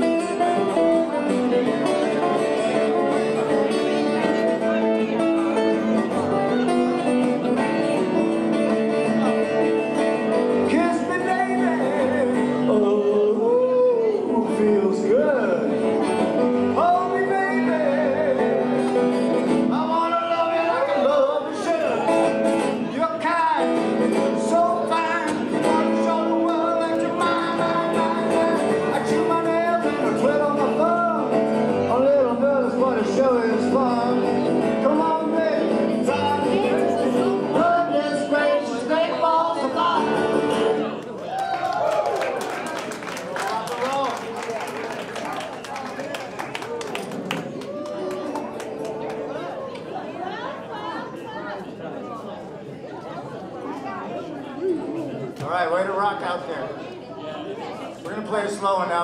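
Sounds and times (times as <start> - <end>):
live country band playing: 0.0 - 41.1
person singing: 10.6 - 22.2, 22.9 - 40.7.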